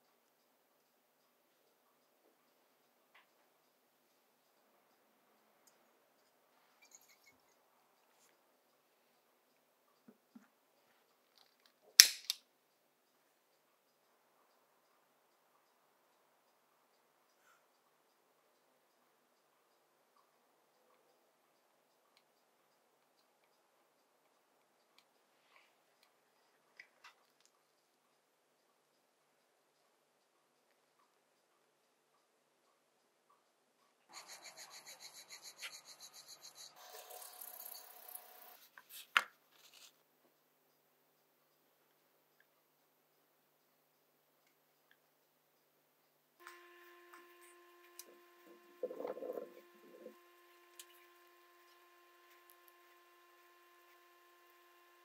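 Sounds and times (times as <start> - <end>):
sharp click: 12.0 - 12.4
spirit lamp snapping alight: 12.0 - 12.4
fast rubbing on a dial: 34.1 - 38.7, 46.5 - 55.0.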